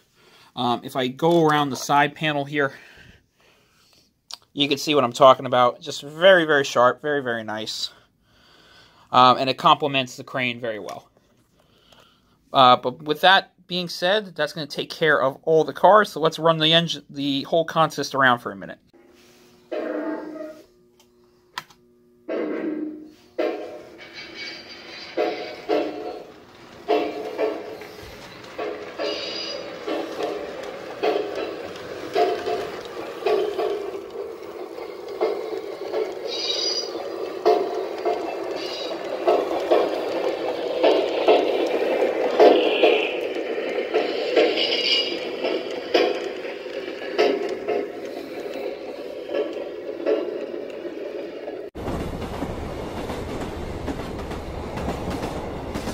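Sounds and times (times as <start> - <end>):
model train wheels rattling: 24.0 - 55.9.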